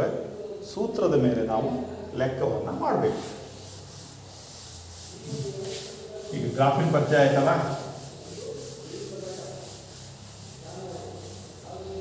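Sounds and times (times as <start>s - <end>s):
soft rubbing and scratching: 2.7s - 12.0s.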